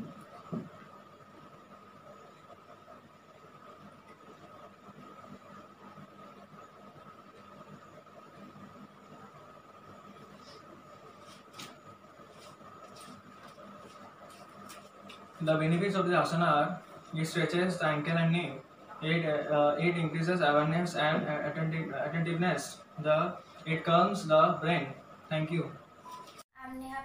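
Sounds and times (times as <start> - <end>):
faint high-pitched hum: 0.0 - 27.0.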